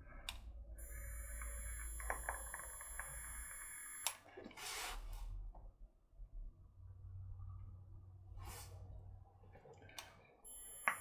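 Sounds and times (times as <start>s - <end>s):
e-cigarette coil hiss and whine: 0.8s - 4.0s.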